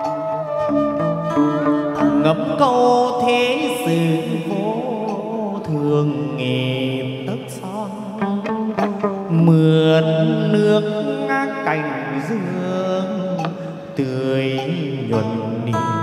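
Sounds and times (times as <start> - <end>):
person singing sliding melody: 0.0 - 16.0
plucked lute: 0.0 - 16.0.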